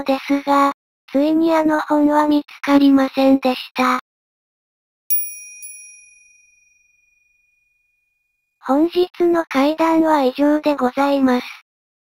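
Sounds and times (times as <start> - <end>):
high bell-like chime: 5.1 - 8.0.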